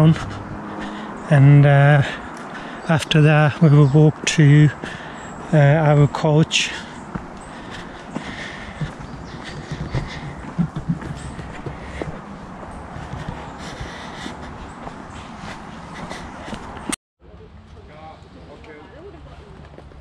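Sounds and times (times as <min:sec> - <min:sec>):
footsteps on dirt path: 0:00.0 - 0:17.0.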